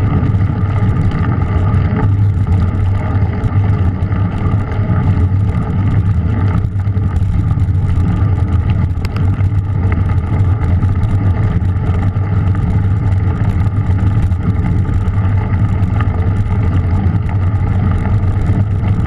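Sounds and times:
bike rattles and clicks: 0.0 - 19.0
wind and tyre rumble: 0.0 - 19.0.

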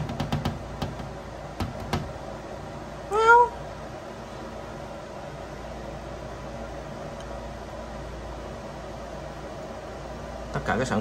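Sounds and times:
fan humming: 0.0 - 11.0.

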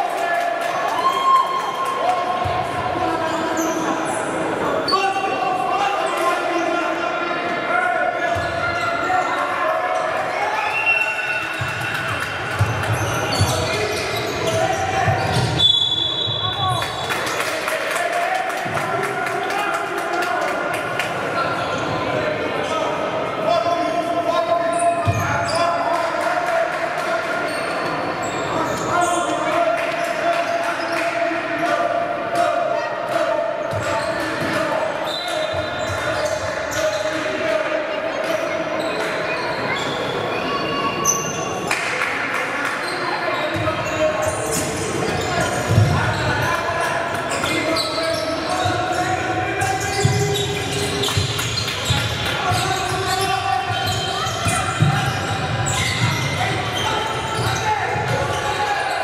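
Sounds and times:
indistinct shouts and chatter: 0.0 - 59.0.

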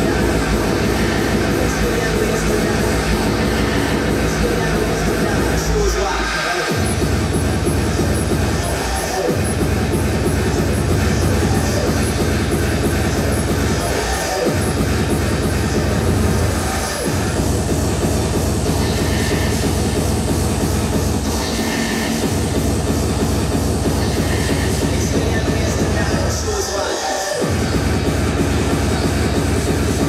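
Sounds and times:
loud hardcore electronic music: 0.0 - 30.0.

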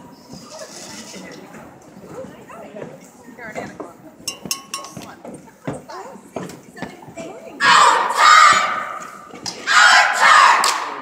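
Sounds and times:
squad shouting a cheer in unison: 7.6 - 11.0.

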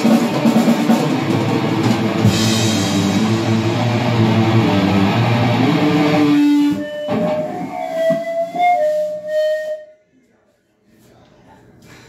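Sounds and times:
electric guitar sustained notes: 1.5 - 7.8.

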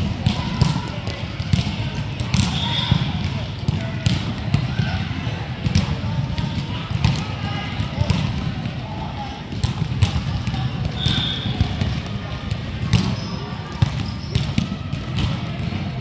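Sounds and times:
echoing hubbub of voices: 0.0 - 16.0.

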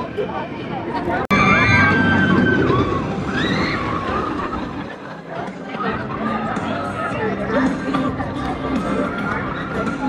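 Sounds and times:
roller coaster train rumbling: 0.1 - 7.4
riders screaming: 1.3 - 4.6.

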